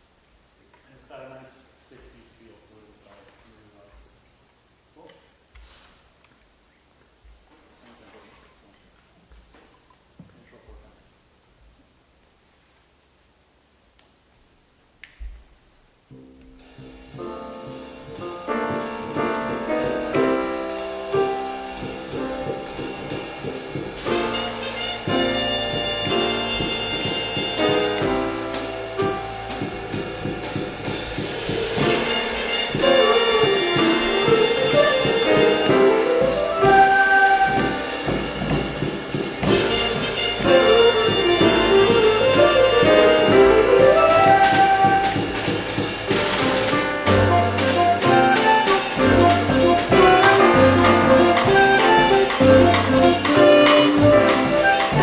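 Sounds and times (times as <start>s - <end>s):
jazz big band playing: 16.2s - 55.0s.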